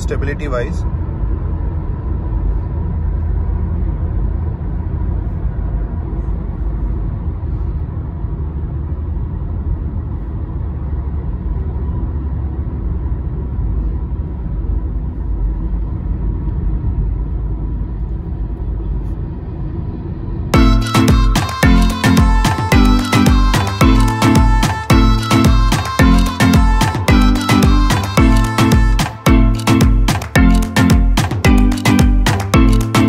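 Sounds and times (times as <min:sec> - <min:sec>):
car cabin road and engine rumble: 0:00.0 - 0:33.0.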